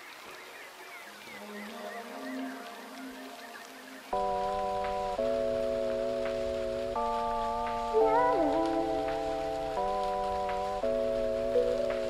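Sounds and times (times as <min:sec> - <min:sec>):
lo-fi music with sustained chords: 0:00.0 - 0:12.0
soft rain-like hiss: 0:00.0 - 0:12.0.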